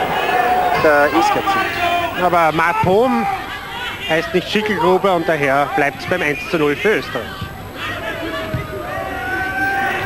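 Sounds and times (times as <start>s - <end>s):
stadium crowd ambience: 0.0s - 10.0s.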